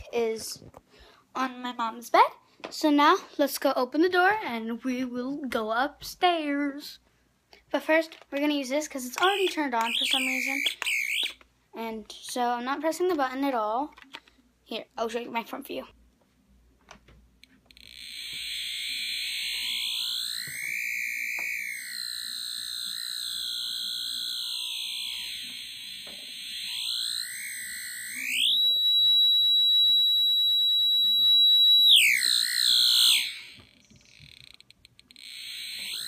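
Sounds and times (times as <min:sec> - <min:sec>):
electronic detector tone: 0:09.2 - 0:11.4, 0:17.6 - 0:36.0.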